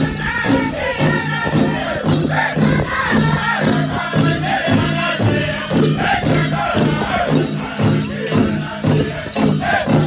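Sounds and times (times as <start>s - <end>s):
men singing: 0.0s - 10.0s
steady drum beat: 0.0s - 10.0s.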